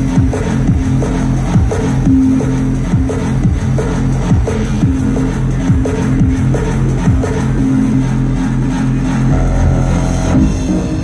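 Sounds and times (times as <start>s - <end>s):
dubstep bass music: 0.0s - 11.0s.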